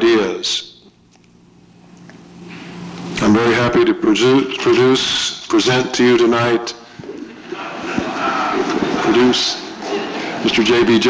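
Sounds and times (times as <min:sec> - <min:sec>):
audience laughing: 0:07.0 - 0:11.0.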